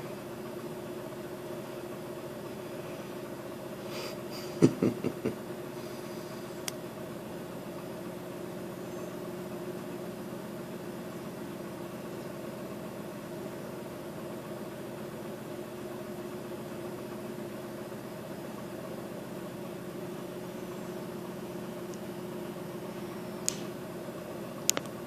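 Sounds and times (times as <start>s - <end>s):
small motor humming: 0.0s - 24.7s.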